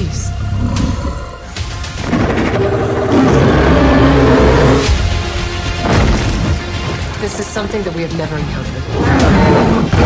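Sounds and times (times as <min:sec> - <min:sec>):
monster roaring: 0:02.1 - 0:04.9.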